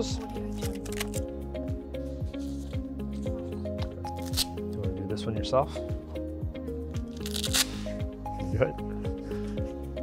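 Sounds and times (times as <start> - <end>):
background music with beat: 0.0 - 10.0
velcro strap ripping: 0.5 - 1.3, 4.1 - 4.6, 7.0 - 8.0.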